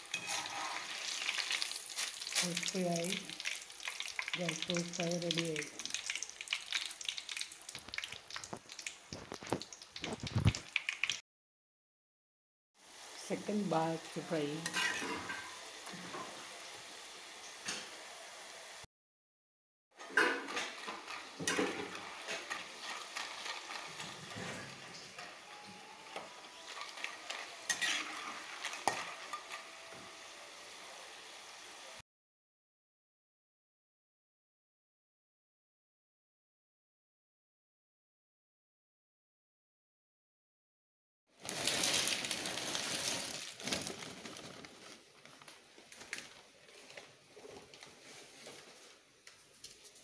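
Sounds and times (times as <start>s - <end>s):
metal utensil scraping a pan: 0.0s - 2.4s, 14.6s - 16.4s, 20.0s - 30.1s
food deep-frying in oil: 0.0s - 11.2s, 12.8s - 18.9s, 20.0s - 32.0s, 41.4s - 44.0s
oil crackling: 0.0s - 11.2s, 20.2s - 30.0s, 41.4s - 48.7s.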